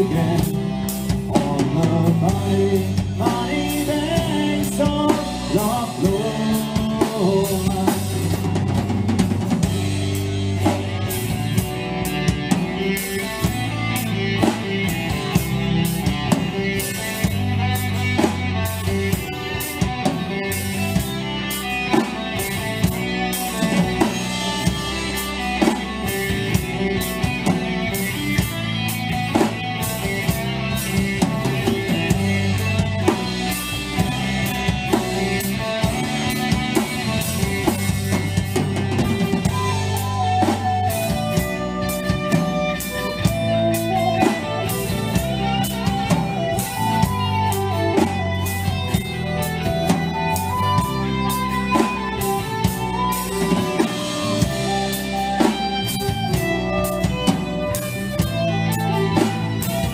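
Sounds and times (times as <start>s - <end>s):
live band playing: 0.0s - 59.9s
wavering lead melody: 0.0s - 59.9s.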